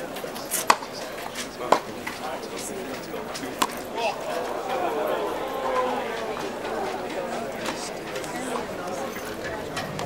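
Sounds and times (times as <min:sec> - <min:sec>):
murmur of spectators' voices: 0:00.0 - 0:10.0
tennis balls struck by racket: 0:00.1 - 0:04.7, 0:05.7 - 0:08.8.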